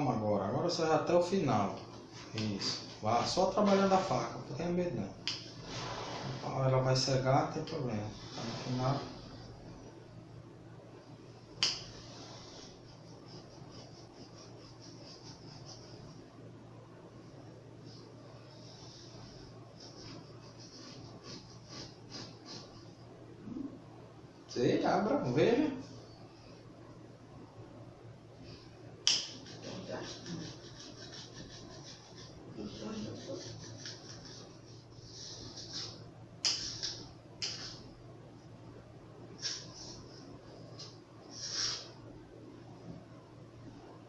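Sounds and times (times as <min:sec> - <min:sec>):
sharp click: 0:11.6 - 0:11.9, 0:29.0 - 0:29.4.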